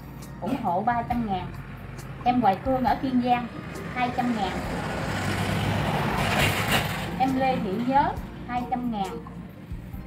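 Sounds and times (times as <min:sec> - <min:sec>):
passing motor vehicle: 0:00.0 - 0:10.0.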